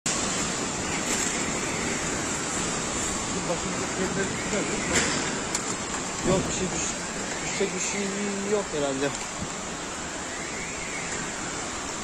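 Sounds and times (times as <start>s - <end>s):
flooded creek rushing water roar: 0.1s - 12.0s.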